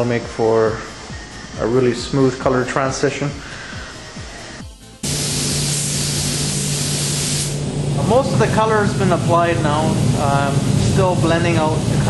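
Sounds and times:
steady low hum: 0.0 - 12.0
spray gun hissing: 3.4 - 7.7.

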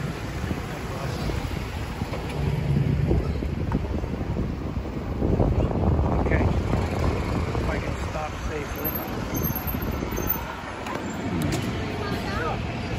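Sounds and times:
wind buffeting microphone: 0.0 - 12.9
people talking: 11.6 - 12.9.

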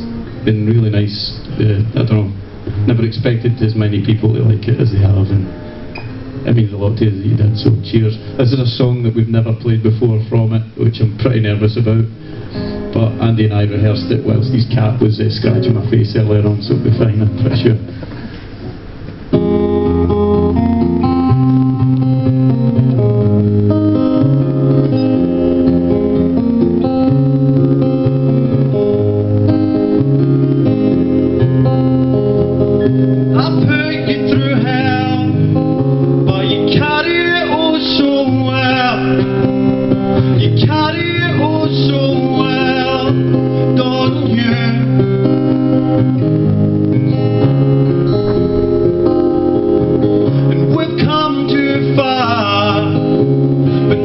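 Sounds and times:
acoustic guitar picked chords: 0.0 - 54.0
man singing: 33.3 - 35.6, 36.2 - 39.6, 40.2 - 45.1, 50.3 - 53.2, 53.8 - 54.0.

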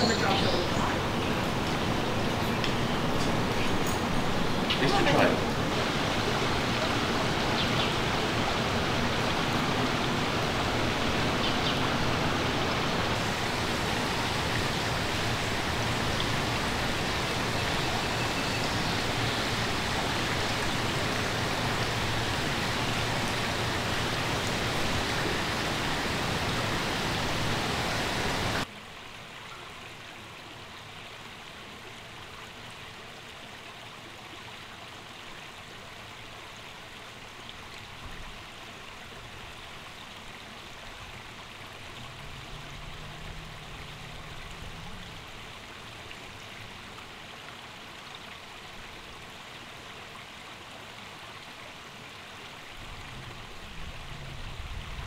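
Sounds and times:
creek water rushing over rocks: 0.0 - 55.0.

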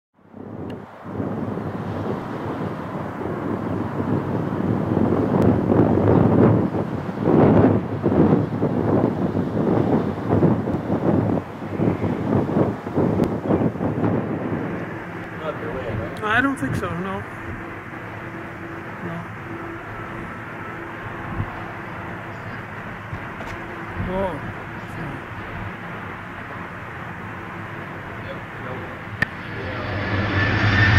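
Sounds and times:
wind buffeting microphone: 0.2 - 30.9.

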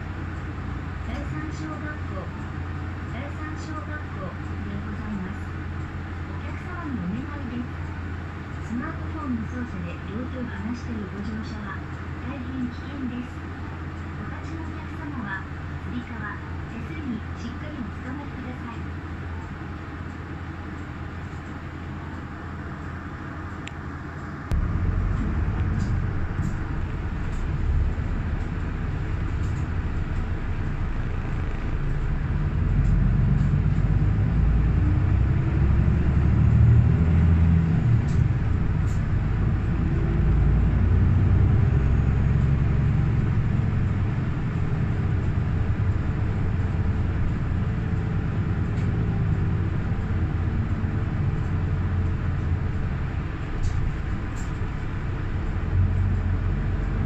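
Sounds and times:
bus engine and road noise: 0.0 - 57.0.

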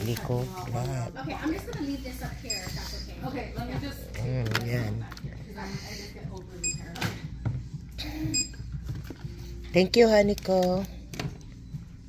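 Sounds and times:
barcode scanner beep: 2.4 - 3.0, 6.6 - 7.0, 8.3 - 8.6.

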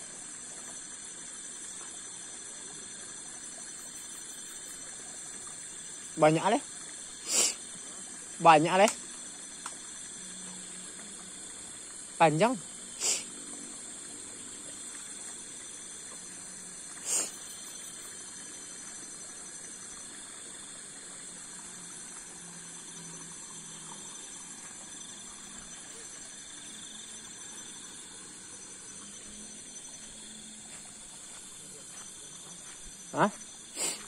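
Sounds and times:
night insects chorus: 0.0 - 34.0.

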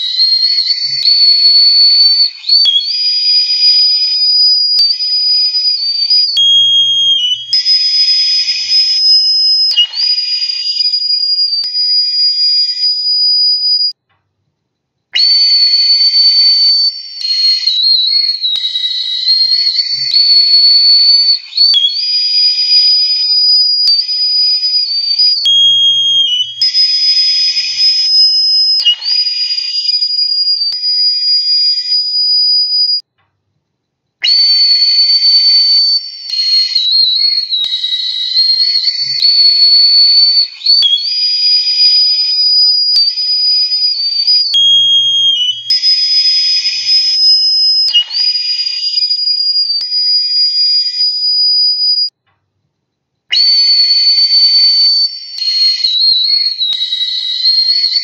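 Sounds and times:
recorder played shrilly: 0.0 - 13.9, 15.2 - 32.0, 34.2 - 49.8, 53.3 - 58.0.

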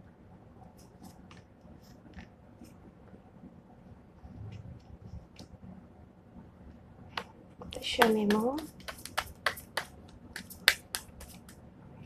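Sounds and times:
playing cards snapping: 8.0 - 11.5.

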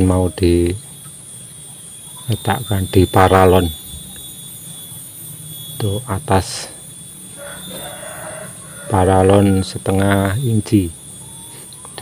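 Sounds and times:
rooster crowing: 7.2 - 10.3.

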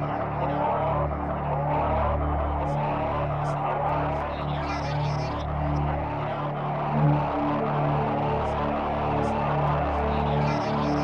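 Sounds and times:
synthesizer drone: 0.0 - 11.0.

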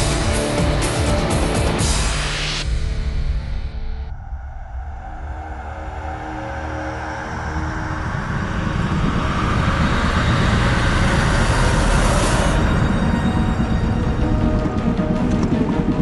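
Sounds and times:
dramatic background music: 0.0 - 16.0
rising rush of sound: 3.6 - 15.0.

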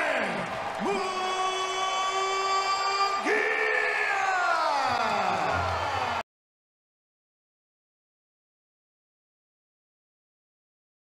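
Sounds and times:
crowd cheering: 0.0 - 6.3.

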